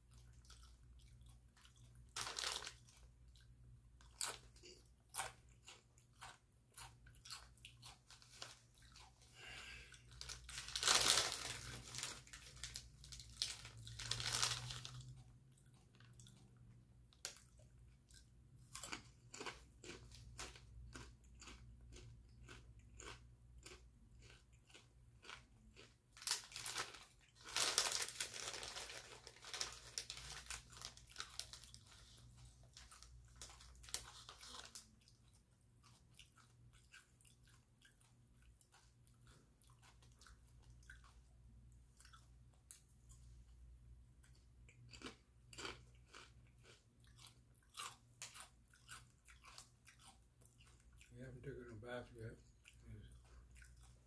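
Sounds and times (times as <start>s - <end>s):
person chewing crisp chips: 0.0s - 54.0s
chip bag rustling: 2.1s - 3.1s, 10.1s - 15.2s, 26.2s - 34.9s.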